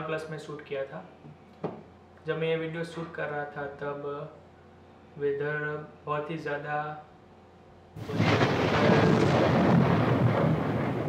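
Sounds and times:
thunder clap and rumble: 8.0s - 11.0s.

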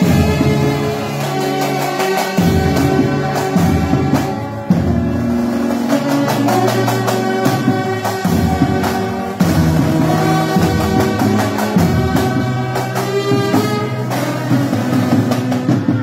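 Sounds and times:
brass band playing chords: 0.0s - 16.0s
drum beats: 0.0s - 16.0s.

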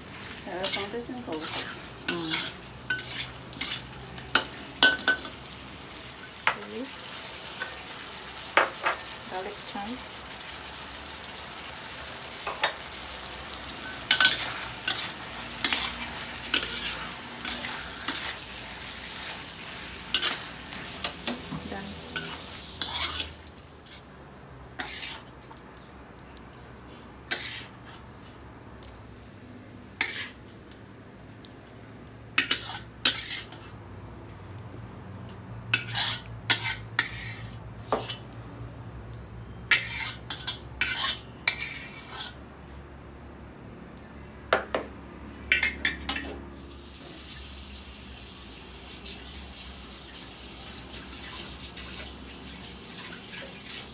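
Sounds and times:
food sizzling: 0.0s - 24.1s, 24.7s - 25.5s, 32.3s - 33.7s, 46.5s - 53.9s
metal spatula scraping a wok: 0.2s - 5.2s, 13.8s - 24.1s, 24.8s - 25.3s, 27.3s - 28.0s, 30.0s - 30.4s, 32.4s - 33.8s, 35.7s - 38.3s, 39.5s - 42.4s.

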